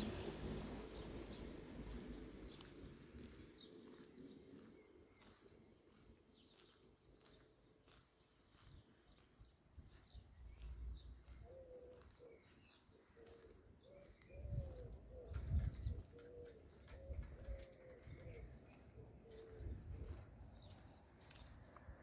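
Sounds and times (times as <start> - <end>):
pigeon cooing: 11.4 - 12.6, 13.2 - 20.2.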